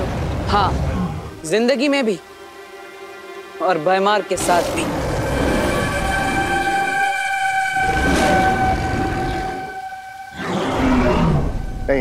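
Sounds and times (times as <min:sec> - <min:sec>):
steady horn-like tone: 0:02.5 - 0:12.0.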